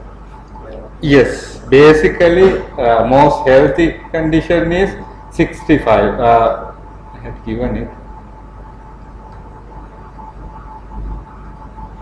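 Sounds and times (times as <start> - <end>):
steady low hum: 0.0 - 12.0
thin steady tone: 0.0 - 12.0.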